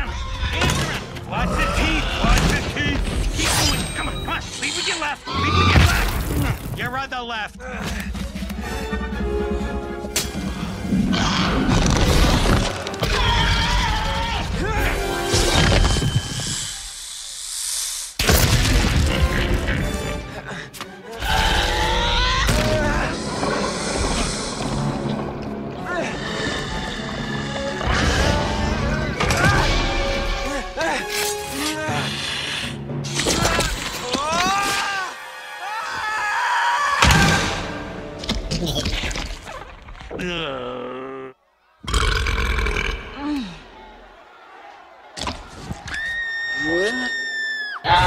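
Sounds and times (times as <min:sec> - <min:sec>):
orchestral film score: 0:00.0 - 0:17.2, 0:18.2 - 0:41.2
creature screeching roar: 0:11.1 - 0:12.4, 0:21.2 - 0:24.5
rising hiss: 0:16.4 - 0:18.2.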